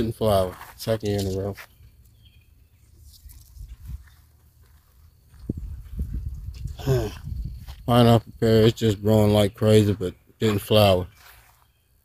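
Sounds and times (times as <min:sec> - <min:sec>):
person sighing: 0:06.8 - 0:07.2.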